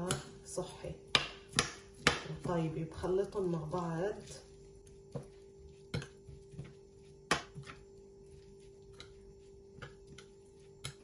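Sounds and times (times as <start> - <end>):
faint steady hum: 0.0 - 11.0
metal spoon stirring in a bowl: 1.0 - 11.0.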